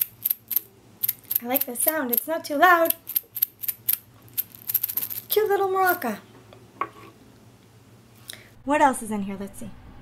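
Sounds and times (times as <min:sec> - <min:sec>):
toy maraca rattling: 0:00.0 - 0:06.1.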